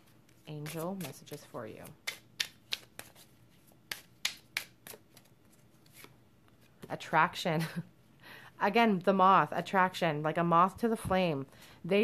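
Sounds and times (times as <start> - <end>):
cards being shuffled by hand: 0.0 - 6.9.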